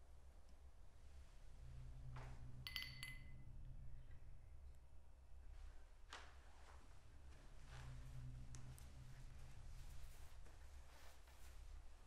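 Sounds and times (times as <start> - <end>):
low steady hum: 0.0 - 12.0
light clinks of small objects: 2.6 - 3.4.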